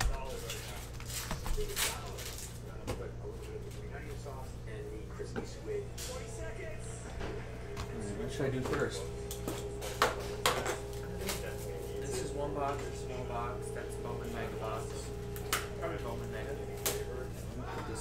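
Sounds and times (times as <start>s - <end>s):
steady hum: 0.0s - 18.0s.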